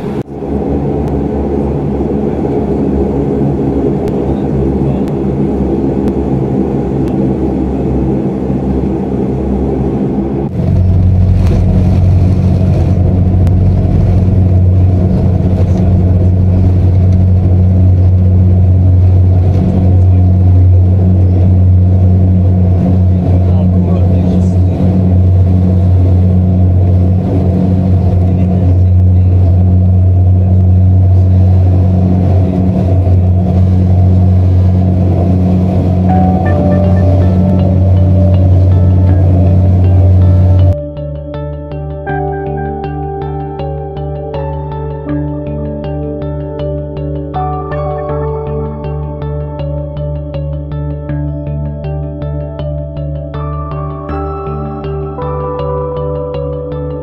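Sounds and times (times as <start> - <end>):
jet engines drone in cabin: 0.0 - 41.0.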